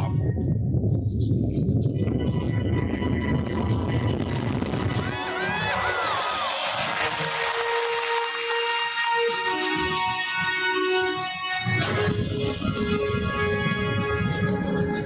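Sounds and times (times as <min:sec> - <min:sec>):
music: 0:00.0 - 0:15.0
rocket launch rumble: 0:01.7 - 0:07.4
crowd cheering and whooping: 0:04.9 - 0:08.6.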